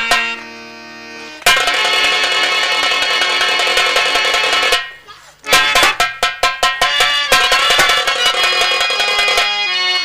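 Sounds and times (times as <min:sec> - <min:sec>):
harmonium chords: 0:00.0 - 0:10.0
fast drum strokes: 0:01.4 - 0:09.6.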